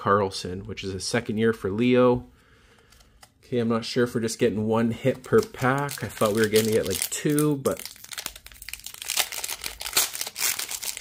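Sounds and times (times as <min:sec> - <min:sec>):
foil wrapper tearing and crinkling: 0:05.3 - 0:11.0.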